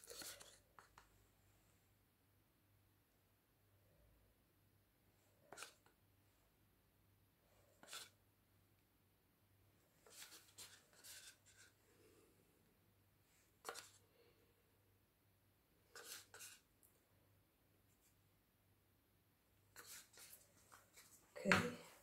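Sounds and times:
stir stick scraping paint cup: 0.0 - 1.1, 5.4 - 6.0, 7.6 - 8.2, 10.0 - 12.1, 13.5 - 14.1, 15.8 - 16.7, 19.7 - 21.3.

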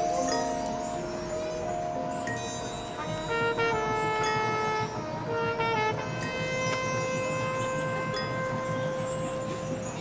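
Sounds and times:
chimes ringing: 0.0 - 10.0.

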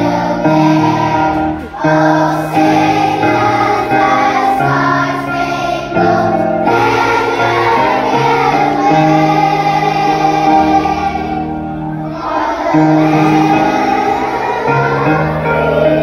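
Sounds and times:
children's choir singing: 0.0 - 16.0.

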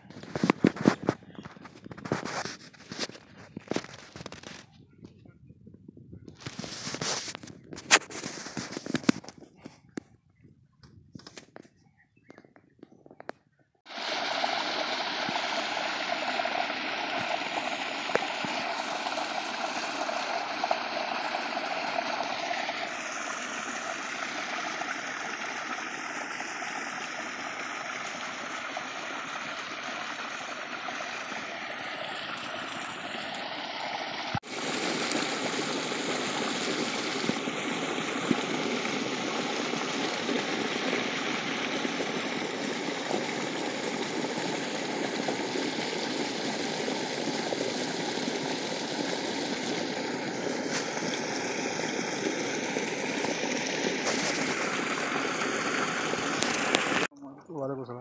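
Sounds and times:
water gushing into concrete channel: 13.9 - 57.2.

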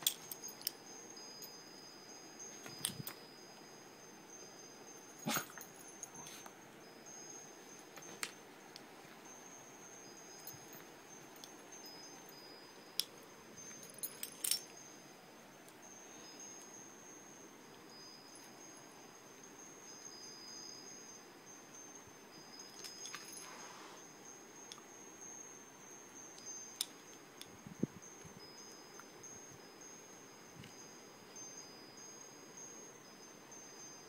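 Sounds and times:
metal collar tags jingling: 0.0 - 23.8.

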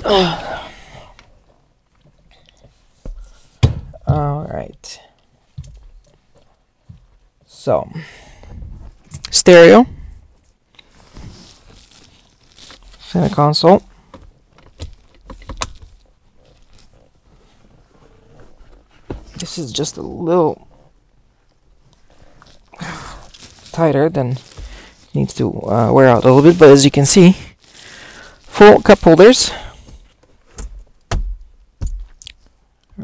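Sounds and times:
faint handling noise: 8.4 - 32.9.

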